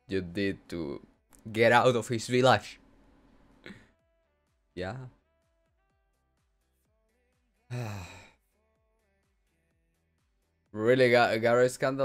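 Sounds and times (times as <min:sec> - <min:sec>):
faint background music: 0:00.0 - 0:12.0
man sighing: 0:03.6 - 0:03.9, 0:07.7 - 0:08.4.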